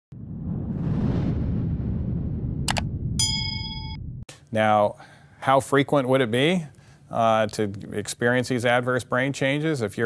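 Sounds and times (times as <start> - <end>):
low rumble: 0.1 - 4.3
bright bell ding: 3.2 - 4.0.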